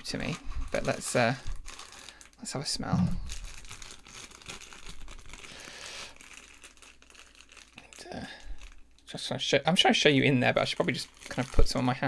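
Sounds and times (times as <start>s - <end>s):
packet crinkling and rustling: 0.0s - 12.0s.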